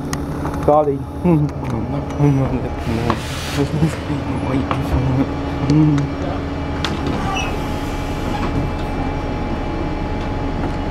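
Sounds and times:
bus diesel engine idling: 0:00.0 - 0:10.9.

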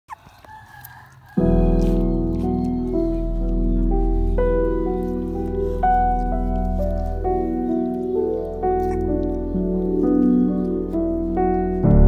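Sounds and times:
faint rooster crow: 0:00.1 - 0:03.8.

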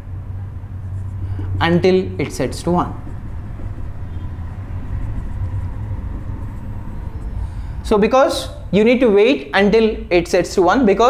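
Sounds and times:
low background rumble: 0:00.0 - 0:09.2.

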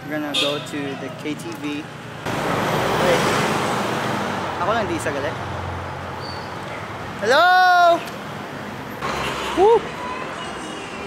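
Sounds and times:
vehicle passing on highway: 0:02.1 - 0:06.2.

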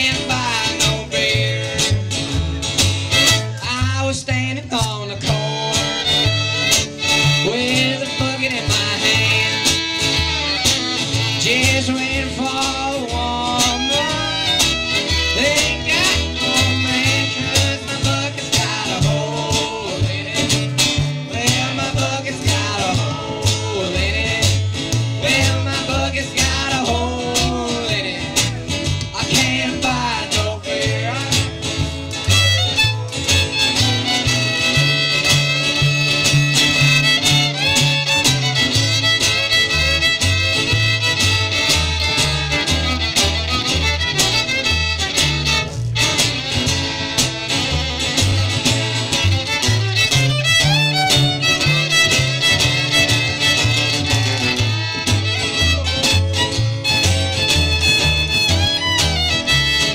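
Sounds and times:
fiddle melody: 0:00.0 - 0:03.6, 0:05.4 - 0:23.6, 0:31.6 - 0:59.9
pulsing bass line: 0:00.0 - 0:59.9
strummed acoustic guitar: 0:00.0 - 0:59.9.

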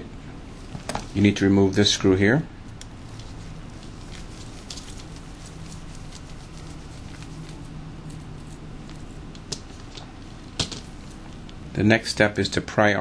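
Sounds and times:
low steady hum: 0:00.0 - 0:13.0.

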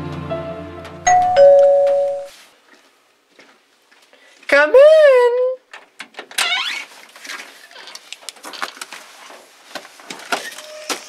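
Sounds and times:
small clicks and rustles: 0:05.7 - 0:11.0
storm door squeaking: 0:06.3 - 0:06.9, 0:10.4 - 0:11.0.

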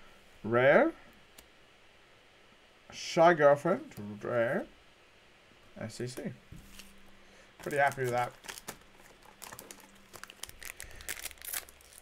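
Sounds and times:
wrapper crinkling: 0:07.6 - 0:12.0.

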